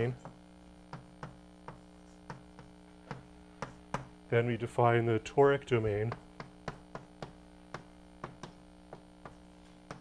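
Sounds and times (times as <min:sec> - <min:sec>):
electrical mains hum: 0:00.0 - 0:10.0
chalk tapping on a blackboard: 0:00.2 - 0:04.2, 0:06.1 - 0:10.0.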